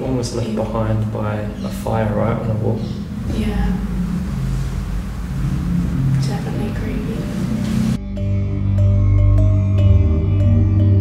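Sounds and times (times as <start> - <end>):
dark ambient drone music: 0.0 - 11.0.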